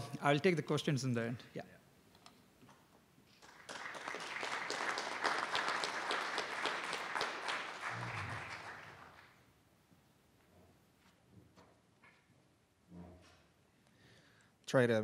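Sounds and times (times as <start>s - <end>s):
audience applauding: 3.4s - 9.4s.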